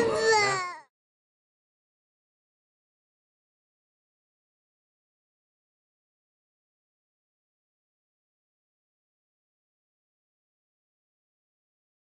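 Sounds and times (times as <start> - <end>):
young child crying wail: 0.0 - 0.9.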